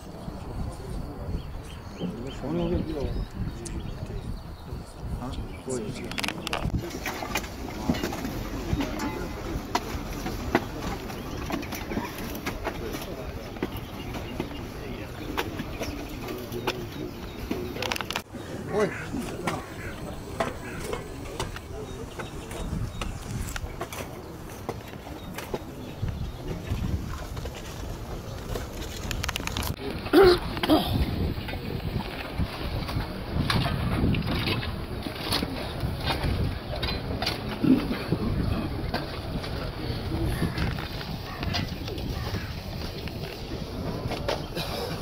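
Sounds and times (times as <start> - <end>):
low voices murmuring: 0.0 - 45.0
wind on microphone: 0.0 - 45.0.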